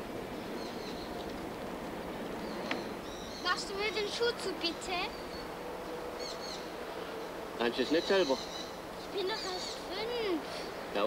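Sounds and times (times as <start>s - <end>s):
bird chirping: 0.4s - 1.4s, 2.2s - 10.3s.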